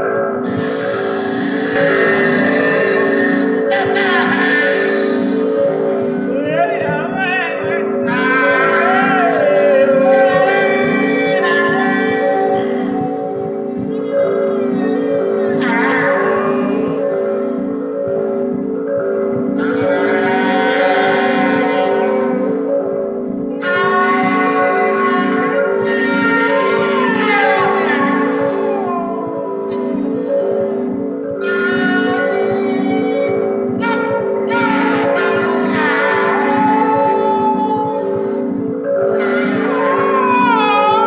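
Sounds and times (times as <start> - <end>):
experimental electronic music: 0.0 - 41.0
held electronic tones: 0.0 - 41.0.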